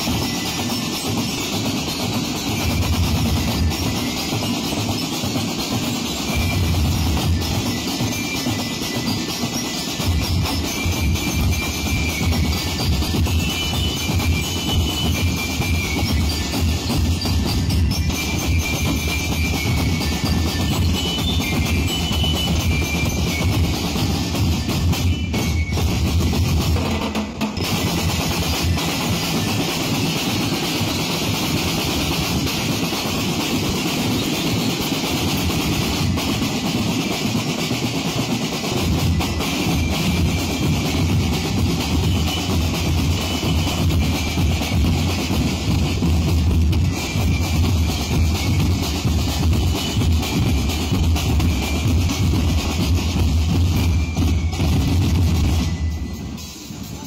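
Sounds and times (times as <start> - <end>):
cymbals: 0.0 - 57.0
high bell-lyre notes: 0.0 - 57.0
snare drums: 0.0 - 57.0.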